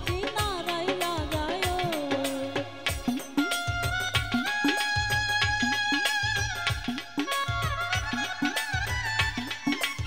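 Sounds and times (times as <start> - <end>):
hand drum rhythm: 0.0 - 10.0
held melody line: 0.0 - 10.0.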